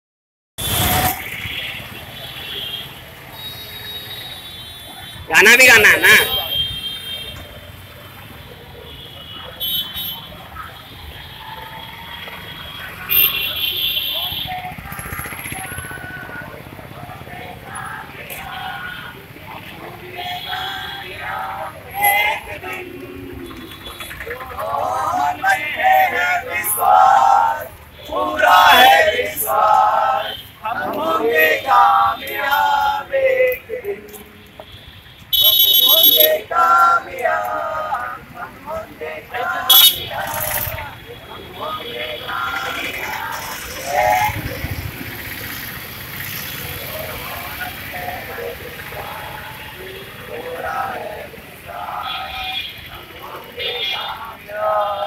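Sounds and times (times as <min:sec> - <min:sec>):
street noise hum: 0:00.6 - 0:55.0
person calling out: 0:05.3 - 0:06.3
voices chanting sing-song: 0:14.2 - 0:34.4, 0:35.8 - 0:55.0.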